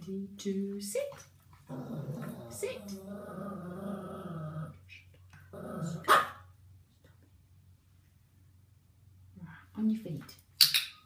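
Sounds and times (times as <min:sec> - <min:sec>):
dog barking: 0:06.1 - 0:06.4.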